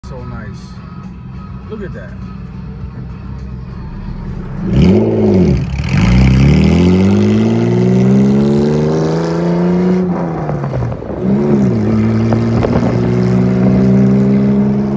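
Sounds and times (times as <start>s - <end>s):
car engine revving and accelerating: 3.8s - 14.9s.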